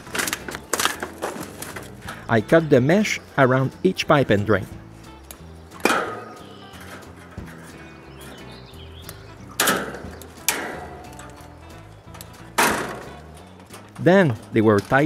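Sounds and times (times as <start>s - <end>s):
bolt cutters snapping steel wire: 0.0s - 2.2s, 5.1s - 15.0s
background music: 0.0s - 15.0s.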